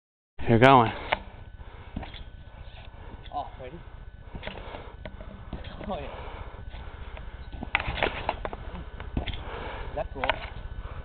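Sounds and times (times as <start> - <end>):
steady low rumble: 0.4 - 11.0
trampoline thumps and spring clicks: 1.1 - 2.4, 4.3 - 6.1, 6.7 - 9.4.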